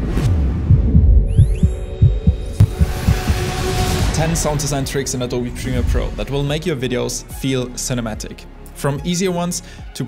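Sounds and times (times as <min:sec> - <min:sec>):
deep bass thumps falling in pitch: 0:00.1 - 0:03.5
high whine rising: 0:00.7 - 0:04.9.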